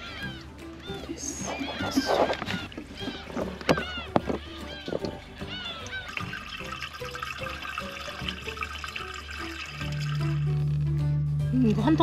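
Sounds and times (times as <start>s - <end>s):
background music: 0.0s - 12.0s
liquid pouring from jug: 1.5s - 10.8s.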